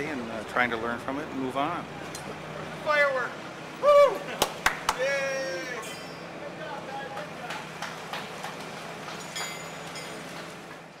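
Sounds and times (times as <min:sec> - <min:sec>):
voices: 0:00.0 - 0:08.6.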